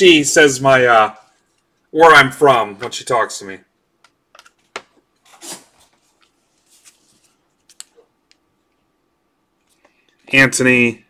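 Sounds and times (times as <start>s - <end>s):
trading cards clicking and rustling: 5.6s - 8.4s.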